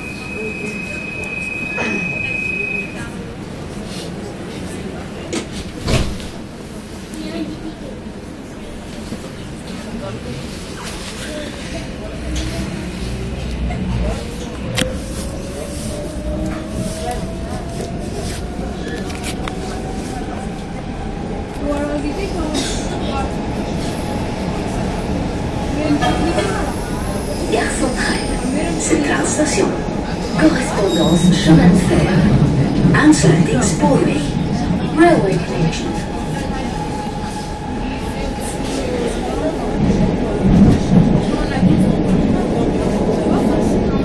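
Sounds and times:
train rumble: 0.0 - 44.0.

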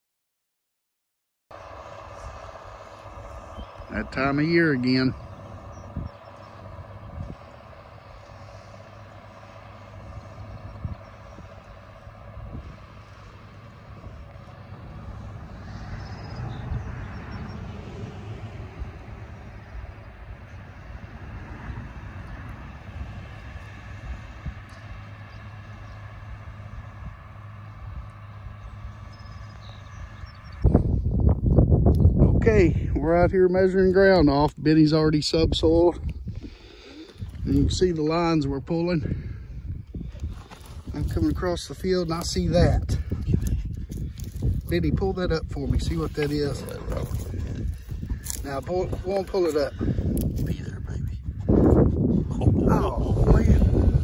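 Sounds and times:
tractor engine drone: 1.5 - 54.0.

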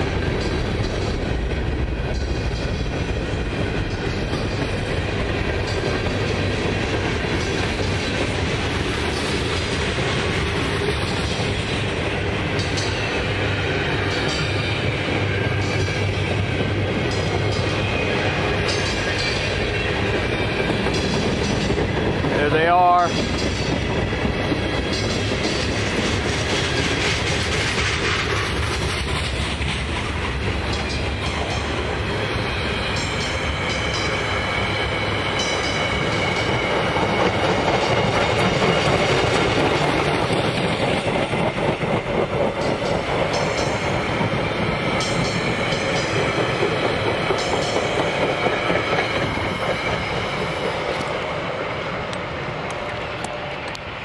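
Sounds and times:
steel wheels clicking over rail joints: 0.0 - 53.9
freight train rolling past: 0.0 - 54.0.

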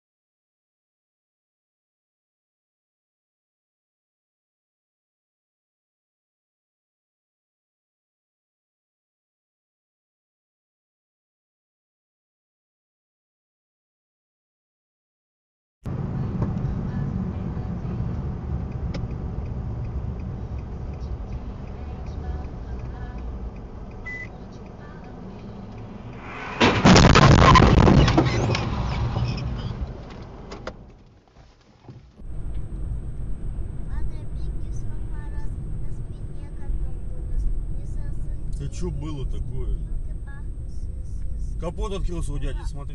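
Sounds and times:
car cabin and road noise: 15.9 - 42.9
loud collision: 26.0 - 30.5.

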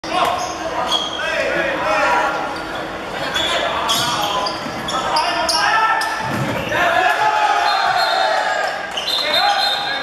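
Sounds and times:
shouts and chatter: 0.0 - 10.0.

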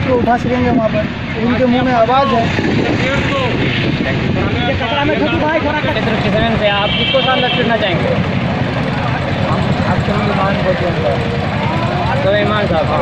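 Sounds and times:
men talking: 0.0 - 13.0
road traffic hum: 0.0 - 13.0.

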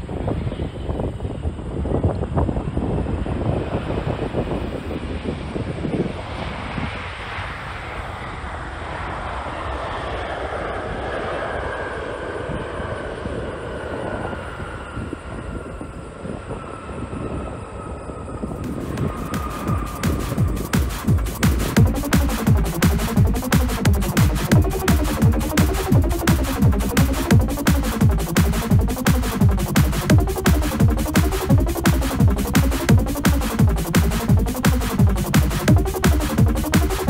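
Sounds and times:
jet engines rushing and whining: 0.0 - 37.0
wind buffeting microphone: 0.0 - 37.0
electronic music with a beat: 18.6 - 37.0.

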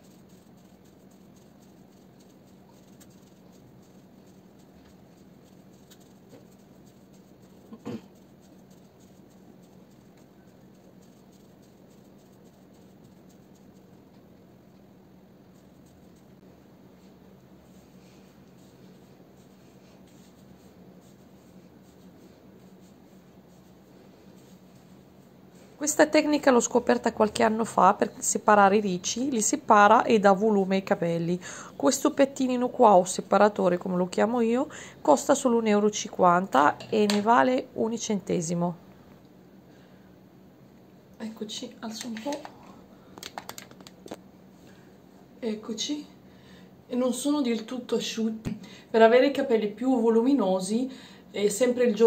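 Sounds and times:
fingers rustling through hair: 0.0 - 31.2.

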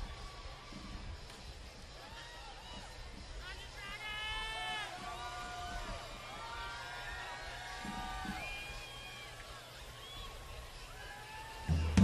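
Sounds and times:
faint crowd noise: 0.0 - 12.0.

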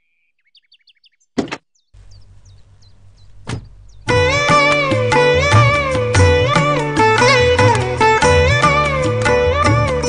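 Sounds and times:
plucked-string melody over drone: 4.1 - 10.0.

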